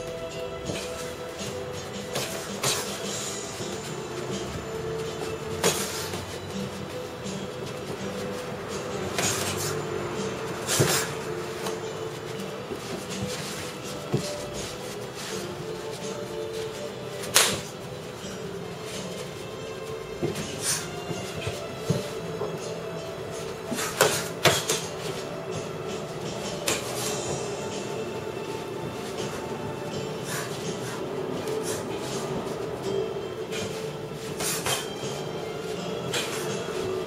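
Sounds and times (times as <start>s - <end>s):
boxing glove hits: 10.6s - 12.0s, 17.1s - 17.8s, 23.7s - 25.2s, 26.5s - 27.3s.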